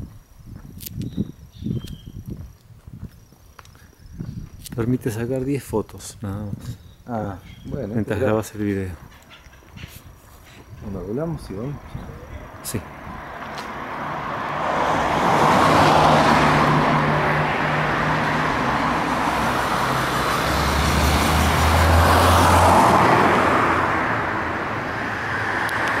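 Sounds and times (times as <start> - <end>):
cars driving past: 7.2 - 26.0.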